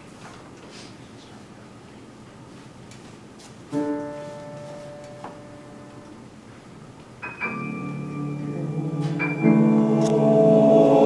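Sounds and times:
grand piano chord: 3.7s - 6.2s, 7.2s - 11.0s.

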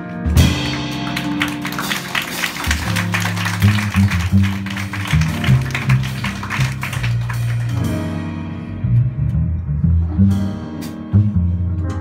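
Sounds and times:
upright bass plucking: 2.7s - 12.0s.

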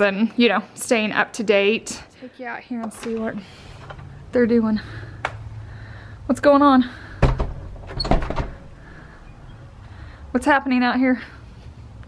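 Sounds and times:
door shutting: 2.8s - 4.1s, 7.1s - 9.7s.

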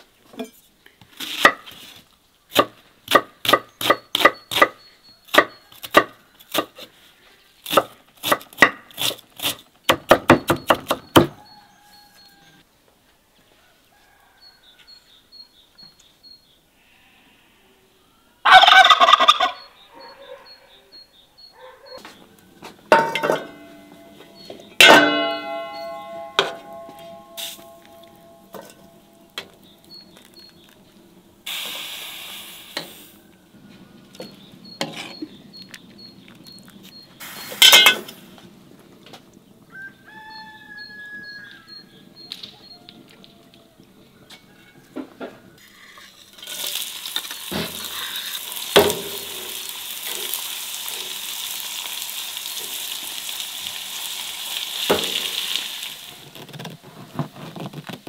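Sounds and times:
turkey gobbling: 18.4s - 20.7s
spoon knocking enamel bowl: 22.9s - 23.8s, 24.8s - 29.6s
ringing metal clinks: 22.9s - 29.4s.

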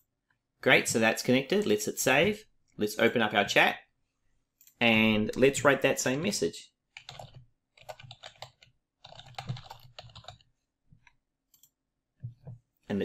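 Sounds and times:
typing on computer keyboard: 7.0s - 10.5s.

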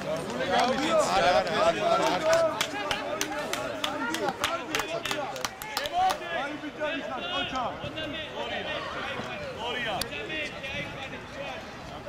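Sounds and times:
people talking and calling: 0.0s - 12.0s.

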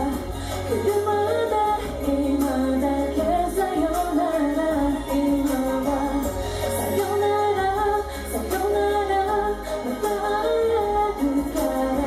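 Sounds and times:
backing music: 0.0s - 12.0s
woman singing into microphone: 0.0s - 12.0s.

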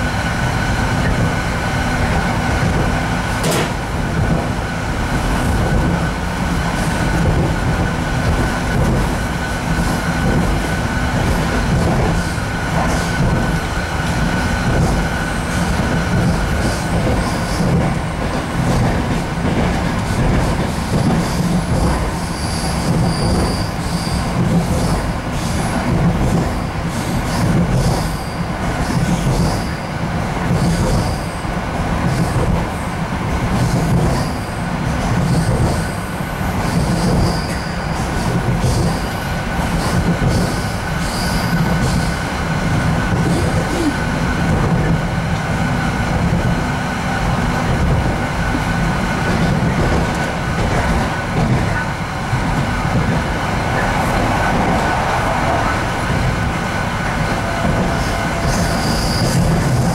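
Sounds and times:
rumble of train wheels on rails: 0.0s - 59.9s.

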